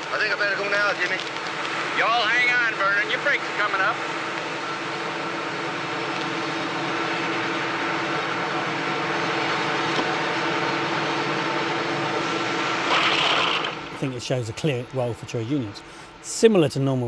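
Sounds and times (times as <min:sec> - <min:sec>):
mill machinery droning: 0:00.0 - 0:17.0.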